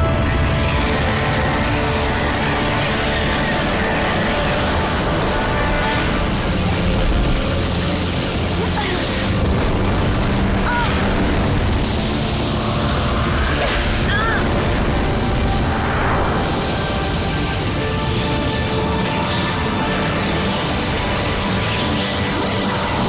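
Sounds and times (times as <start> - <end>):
booming explosions: 0.0 - 23.0
dramatic action music: 0.0 - 23.0.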